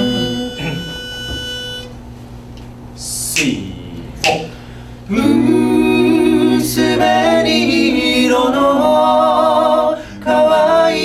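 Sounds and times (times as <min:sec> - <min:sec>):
pitch pipe note: 0:00.0 - 0:01.9
faint low hum: 0:00.0 - 0:11.0.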